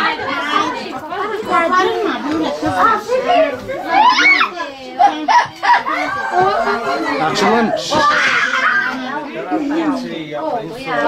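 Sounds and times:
women and children chattering: 0:00.0 - 0:11.0.

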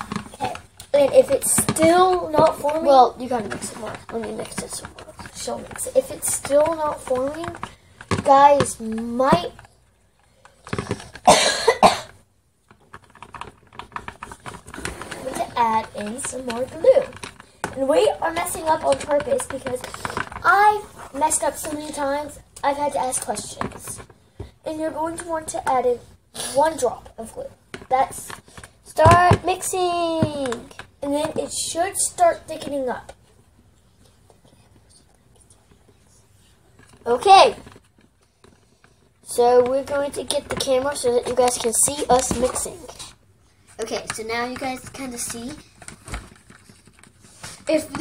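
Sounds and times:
hands handling plastic tub: 0:00.0 - 0:09.7, 0:12.7 - 0:25.9, 0:36.7 - 0:48.0
child coughing: 0:11.2 - 0:12.2.

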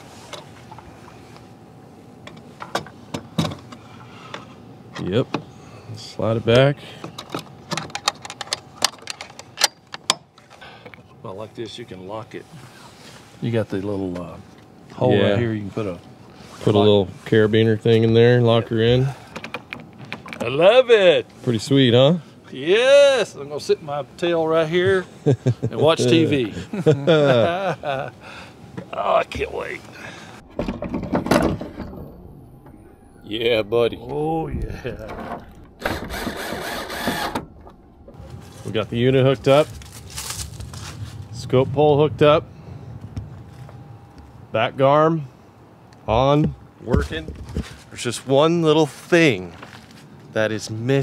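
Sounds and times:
metal latch clicking and rattling: 0:07.2 - 0:10.3.

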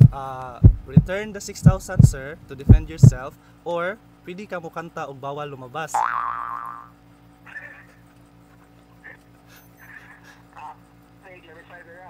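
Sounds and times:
cartoon boing sound effect: 0:06.0 - 0:07.0
stifled giggling: 0:07.4 - 0:10.4.

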